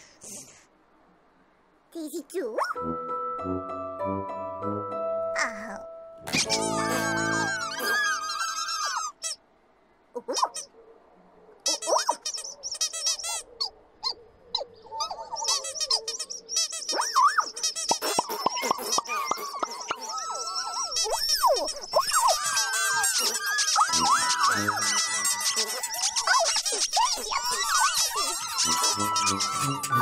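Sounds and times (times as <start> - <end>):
tiny squeaky chirping voices: 2.0 - 2.8, 5.4 - 9.4, 10.2 - 10.7, 11.6 - 30.0.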